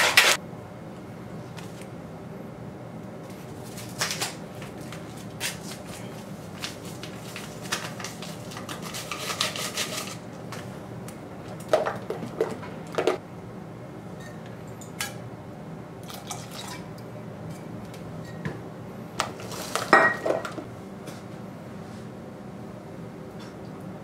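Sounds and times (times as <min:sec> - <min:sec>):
utensil scraping bowl: 0:08.6 - 0:10.3.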